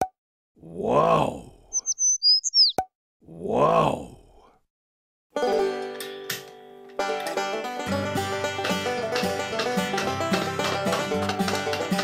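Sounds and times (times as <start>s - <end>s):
vocal-like swoops: 1.7s - 2.8s
short high chirps: 1.8s - 2.8s
plucked country music: 5.4s - 12.0s.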